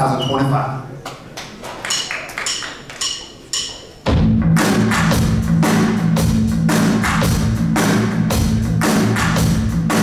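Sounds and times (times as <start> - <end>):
drumstick count-in clicks: 1.9 - 3.9.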